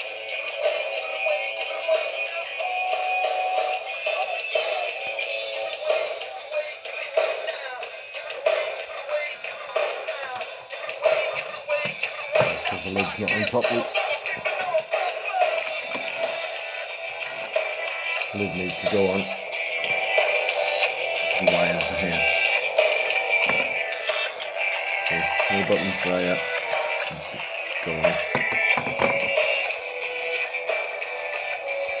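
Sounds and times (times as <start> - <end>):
tinny music with singing: 0.0 - 32.0.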